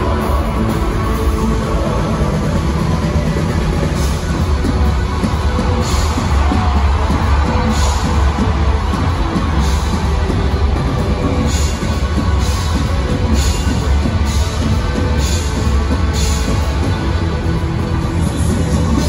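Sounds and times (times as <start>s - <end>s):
live rock band: 0.0s - 19.0s.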